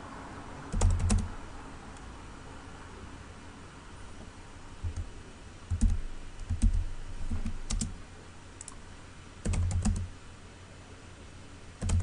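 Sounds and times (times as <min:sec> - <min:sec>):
computer keyboard keystrokes: 0:00.7 - 0:01.3, 0:04.8 - 0:05.1, 0:05.7 - 0:07.9, 0:08.6 - 0:08.8, 0:09.4 - 0:10.1, 0:11.8 - 0:12.0.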